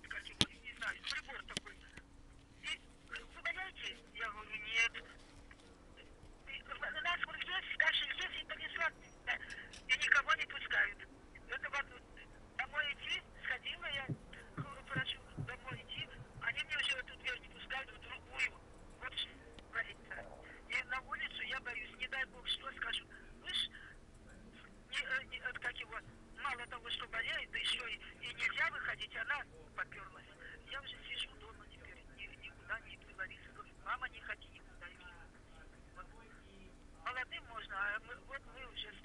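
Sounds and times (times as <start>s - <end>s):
voice talking over telephone: 6.5s - 23.8s.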